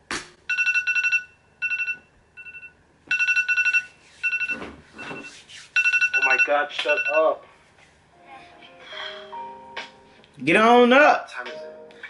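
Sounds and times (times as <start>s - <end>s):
two-tone electronic phone alarm ringtone: 0.5s - 7.3s.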